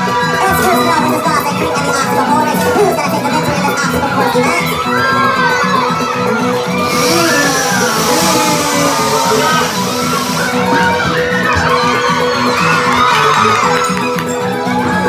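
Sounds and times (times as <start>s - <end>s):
crowd shouting and cheering: 0.0s - 15.0s
music with repeating bass line: 6.7s - 11.1s.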